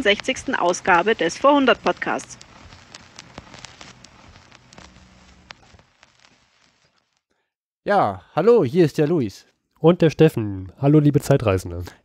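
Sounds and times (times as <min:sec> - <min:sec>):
faint crackling clicks: 0:00.0 - 0:07.3.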